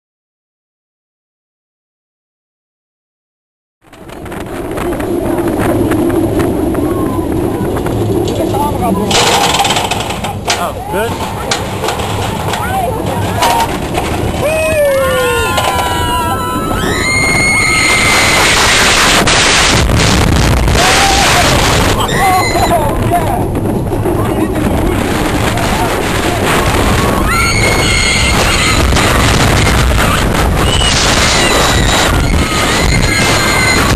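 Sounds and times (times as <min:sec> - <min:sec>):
roller coaster rumbling on track: 0:03.8 - 0:33.9
wheels clacking on wooden track: 0:03.9 - 0:16.1
rider screaming: 0:14.3 - 0:18.8, 0:20.7 - 0:23.1, 0:26.8 - 0:33.9.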